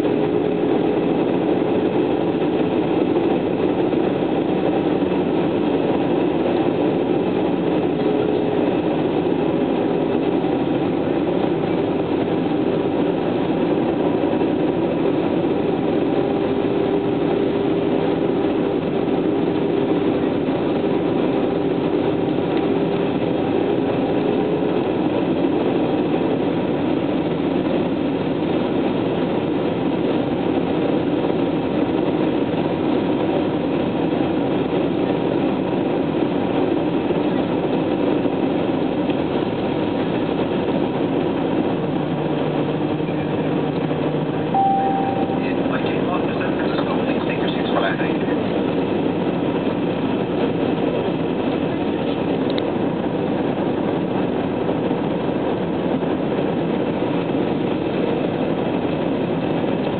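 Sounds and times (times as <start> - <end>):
jet engine and air noise: 0.0 - 59.9
engine tone: 41.8 - 47.0
short high beep: 44.6 - 45.7.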